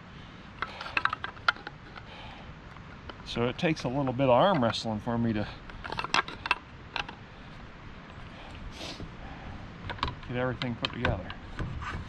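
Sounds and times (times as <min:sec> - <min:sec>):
faint handling: 0:00.5 - 0:12.0
shotgun parts clicking: 0:00.6 - 0:05.0, 0:05.6 - 0:07.2, 0:09.8 - 0:11.6.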